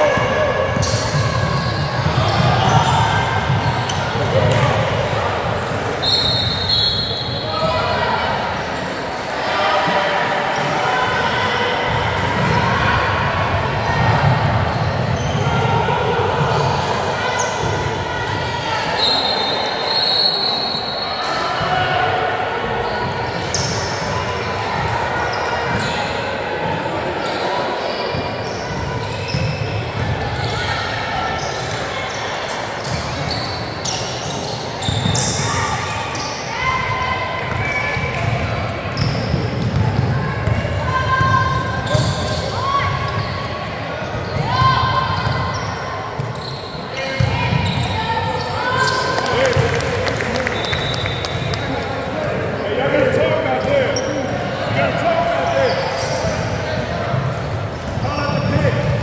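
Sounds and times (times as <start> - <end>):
voices calling out echoing: 0.0 - 59.0.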